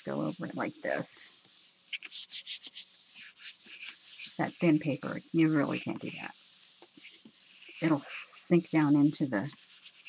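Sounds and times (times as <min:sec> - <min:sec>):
hands rubbing on paper: 0:00.0 - 0:10.0.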